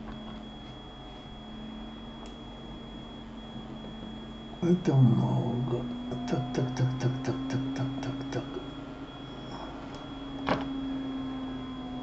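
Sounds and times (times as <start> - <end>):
faint high-pitched whine: 0.0 - 12.0
low electrical hum: 0.0 - 12.0
person speaking: 4.6 - 8.7.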